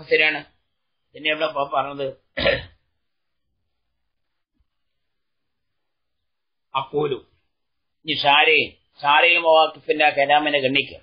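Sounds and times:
man speaking: 0.0 - 2.3, 6.7 - 7.4, 8.0 - 11.0
man clearing throat: 2.4 - 2.8.

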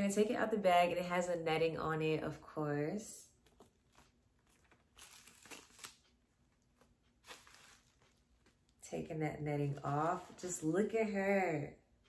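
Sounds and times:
packaging rustling and crinkling: 3.4 - 8.7.

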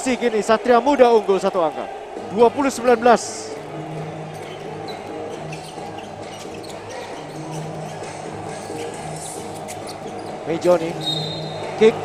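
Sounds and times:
sneaker squeaks: 3.5 - 12.0.

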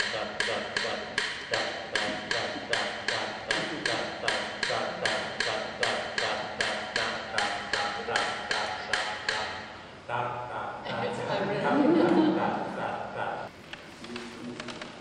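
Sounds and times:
rhythmic ringing tapping: 0.0 - 9.7.

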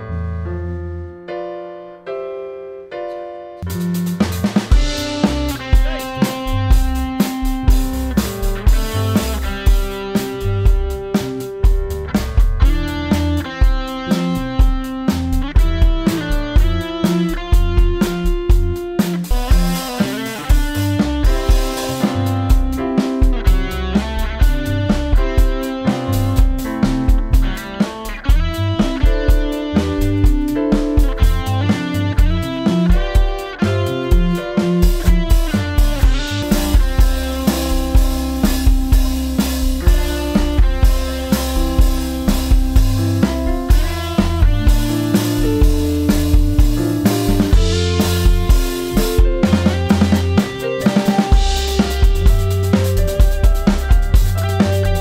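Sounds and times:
keyboard piano line: 0.0 - 55.0
electric guitar: 3.0 - 55.0
drum kit: 3.6 - 55.0.

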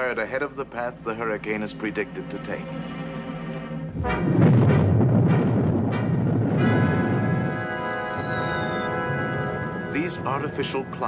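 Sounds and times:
orchestral music: 0.8 - 11.0
rocket launch roaring rumble: 4.0 - 9.0
sharp blasts: 4.0 - 9.6.

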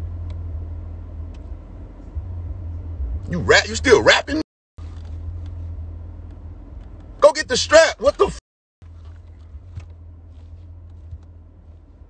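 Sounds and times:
car rumbling inside cabin: 0.0 - 12.0.

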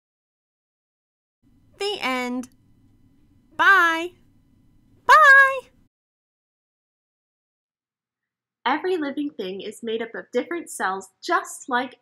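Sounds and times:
high-pitched cartoonish voice: 3.6 - 4.1, 5.1 - 5.7.

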